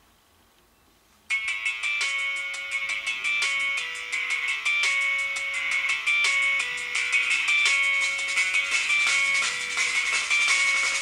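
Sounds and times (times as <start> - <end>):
music from small phone loudspeaker: 1.3 - 11.0.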